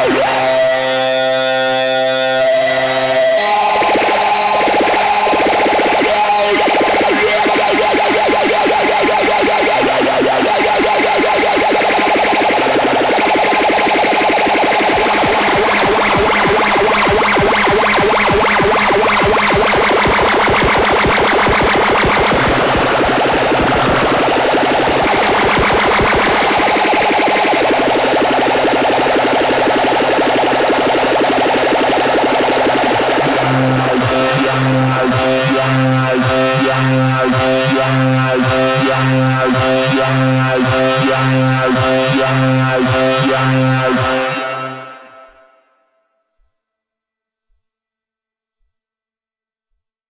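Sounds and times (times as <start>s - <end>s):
synthesizer tone rattling flutter: 3.6s - 44.1s.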